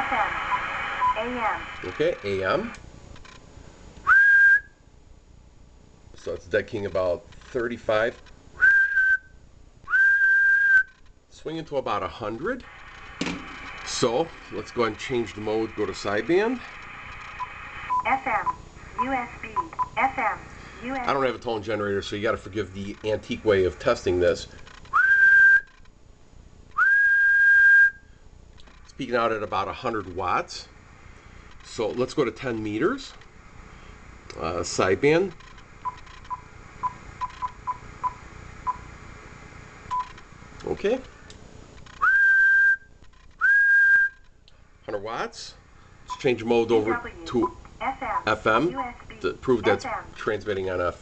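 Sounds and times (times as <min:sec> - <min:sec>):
man whistling high notes: 0:04.1 - 0:04.8, 0:08.6 - 0:11.0, 0:25.0 - 0:25.7, 0:26.8 - 0:28.1, 0:42.0 - 0:44.2
radio transceiver key beeps: 0:35.4 - 0:38.8, 0:39.9 - 0:40.2.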